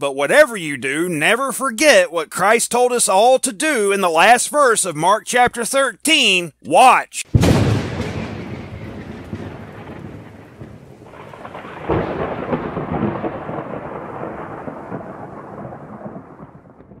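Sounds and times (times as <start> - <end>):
rolling thunder: 7.3 - 17.0.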